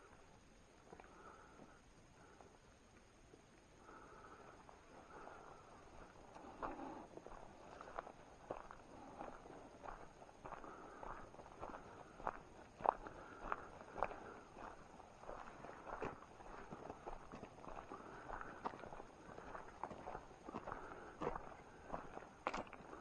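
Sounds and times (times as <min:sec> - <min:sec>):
footsteps on dirt trail: 0:03.9 - 0:23.0.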